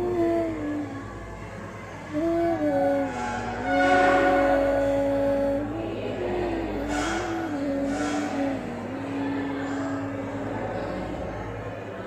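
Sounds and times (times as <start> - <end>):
slow melody of held notes: 0.0 - 12.0.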